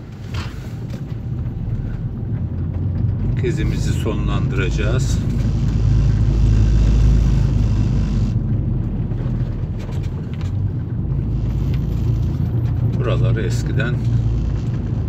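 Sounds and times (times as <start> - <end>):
car engine and tyre rumble: 0.0 - 15.0.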